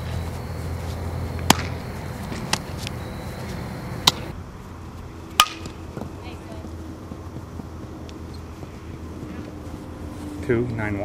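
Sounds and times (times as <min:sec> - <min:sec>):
outdoor background: 0:00.0 - 0:11.0
softball smacks: 0:01.4 - 0:03.0, 0:04.0 - 0:04.3, 0:05.4 - 0:05.8.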